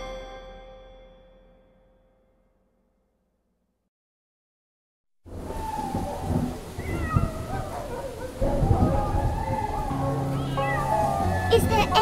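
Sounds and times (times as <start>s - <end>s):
rain-like noise: 5.3s - 12.0s
wavering cries: 5.4s - 12.0s.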